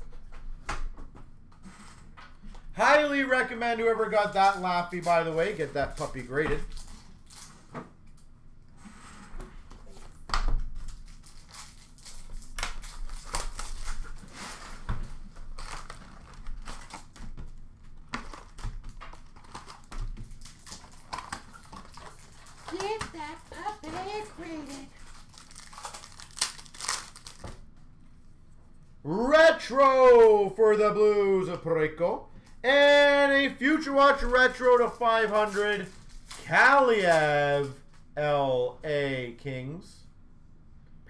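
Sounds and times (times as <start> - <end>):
card pack wrappers crinkling: 10.8 - 27.6, 33.8 - 37.8.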